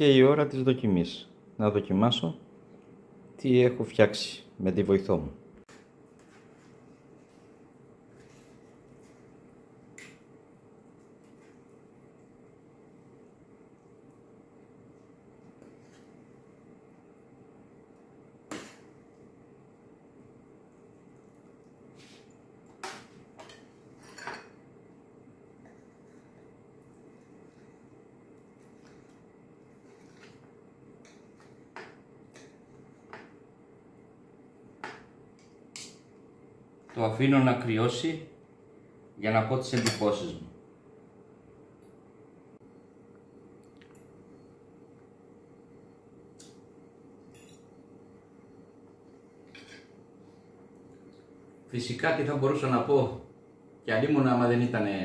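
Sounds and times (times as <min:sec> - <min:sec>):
low room hum: 0:00.0 - 0:55.0
metal utensils clinking on dishes: 0:22.8 - 0:24.6, 0:47.3 - 0:47.8, 0:49.4 - 0:49.9.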